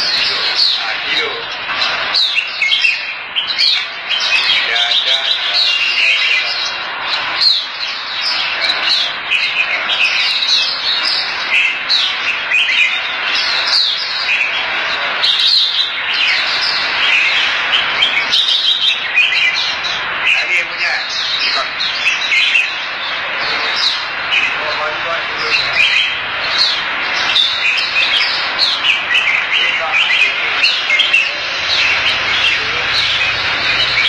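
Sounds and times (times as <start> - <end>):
caged birds chirping and warbling: 0.0 - 34.0.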